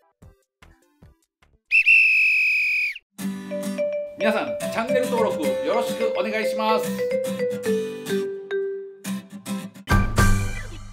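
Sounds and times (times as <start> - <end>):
long high whistle blast: 1.7 - 3.0.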